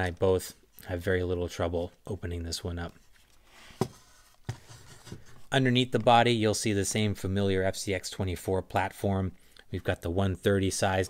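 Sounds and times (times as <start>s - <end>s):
soft rubbing: 2.9s - 5.6s.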